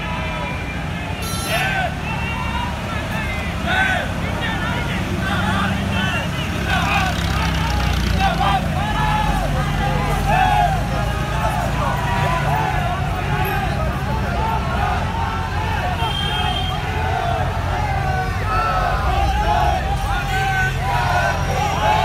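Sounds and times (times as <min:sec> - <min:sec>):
crowd voices: 0:00.0 - 0:22.0
military vehicle engines rumbling: 0:00.0 - 0:22.0.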